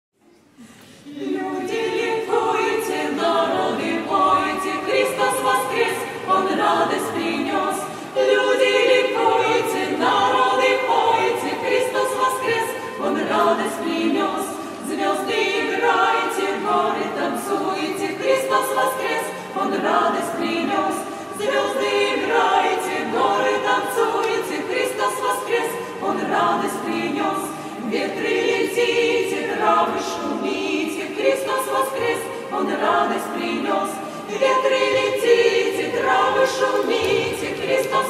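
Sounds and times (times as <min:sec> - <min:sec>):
women's choir singing a cappella: 0:00.3 - 0:38.0.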